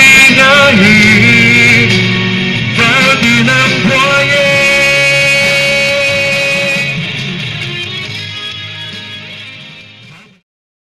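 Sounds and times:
man singing a long note: 0.0 - 2.0, 2.8 - 7.0
guitar accompaniment: 0.0 - 10.4.

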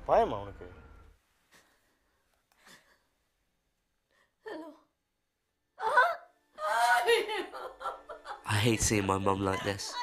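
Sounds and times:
woman wailing and sobbing: 5.8 - 8.5, 9.4 - 10.0.

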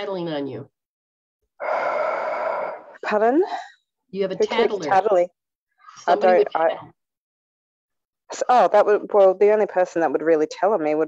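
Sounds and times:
person breathing: 1.6 - 3.7.

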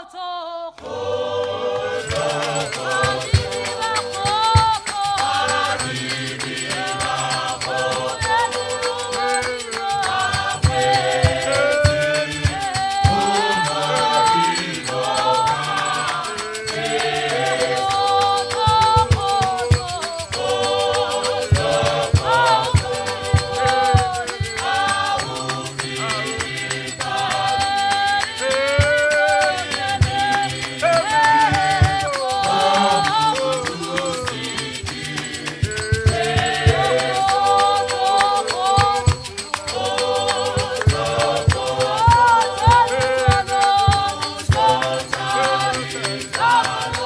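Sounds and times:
choir singing a hymn: 0.2 - 47.0
steady drum beat: 1.5 - 47.0
rattles shaking: 2.0 - 47.0.

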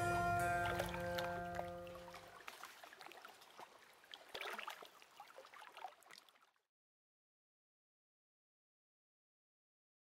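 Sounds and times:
music of held notes: 0.0 - 2.2
faint water lapping: 0.0 - 6.6.

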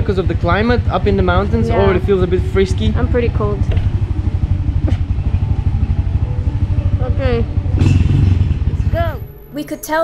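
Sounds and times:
small motorbike engine chugging: 0.0 - 9.3
person speaking: 1.5 - 2.1.

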